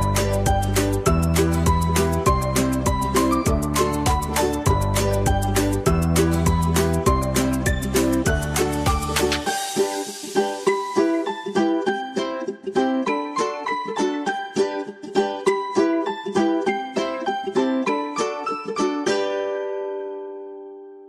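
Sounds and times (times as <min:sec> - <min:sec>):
upbeat pop music: 0:00.0 - 0:18.2.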